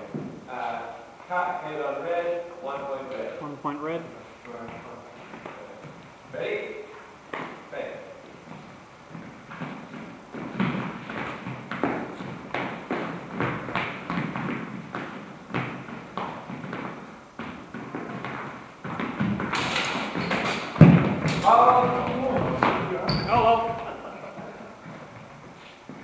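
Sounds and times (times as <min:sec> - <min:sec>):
feet stamping on hard floor: 0:08.3 - 0:26.0.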